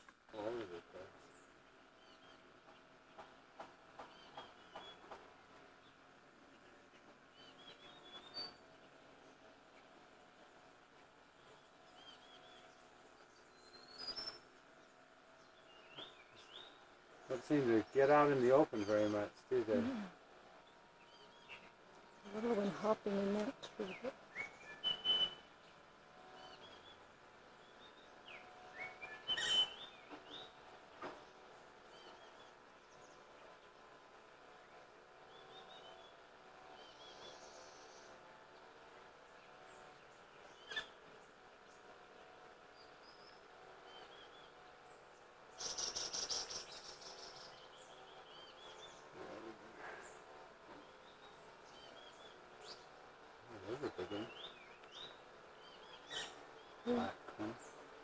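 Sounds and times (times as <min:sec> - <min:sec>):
small birds chirping: 0:00.0 - 0:58.0.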